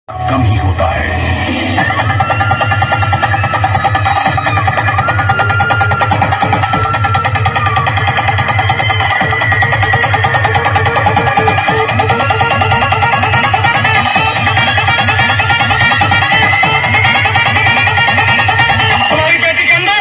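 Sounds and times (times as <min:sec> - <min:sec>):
loud bass-heavy music over loudspeakers: 0:00.1 - 0:20.0.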